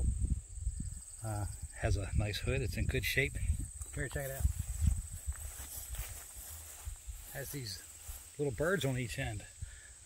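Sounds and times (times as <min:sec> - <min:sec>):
insects droning: 0:00.0 - 0:10.0
footsteps through grass: 0:03.5 - 0:09.4.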